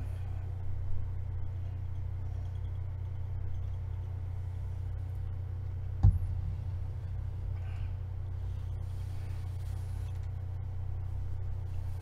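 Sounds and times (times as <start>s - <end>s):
low-pitched hum: 0.0s - 12.0s.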